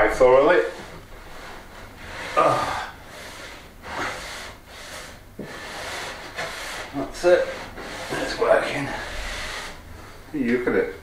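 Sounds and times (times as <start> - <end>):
cloth wiping wooden worktop: 3.1 - 9.8.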